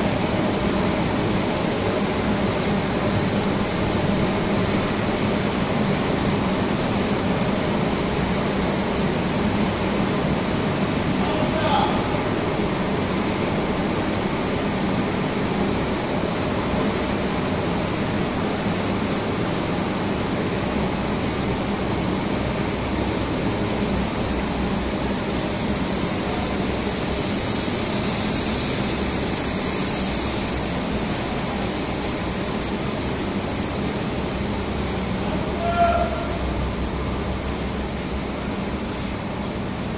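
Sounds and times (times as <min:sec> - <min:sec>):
wire production line running: 0:00.0 - 0:39.9.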